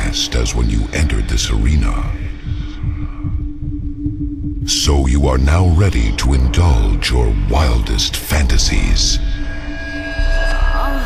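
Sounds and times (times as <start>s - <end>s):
heartbeat thumps: 0.0s - 9.6s
steady droning tone: 0.0s - 11.0s.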